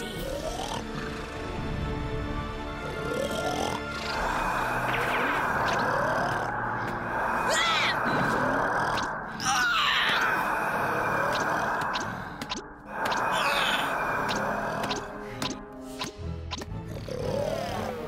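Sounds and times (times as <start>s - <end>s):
cartoon giant snoring: 0.0s - 1.5s, 2.8s - 4.8s, 16.8s - 18.0s
music: 0.0s - 18.0s
character straining and crying out: 7.4s - 8.4s, 9.4s - 11.7s.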